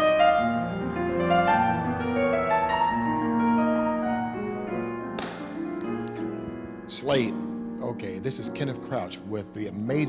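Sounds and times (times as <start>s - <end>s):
grand piano chords: 0.0s - 10.0s
sharp tap: 5.2s - 5.9s.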